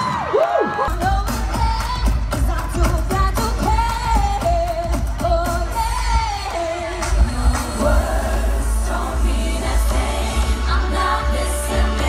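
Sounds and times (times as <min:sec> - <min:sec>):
live pop music through loudspeakers: 0:00.0 - 0:12.0
heavy bass: 0:00.9 - 0:12.0.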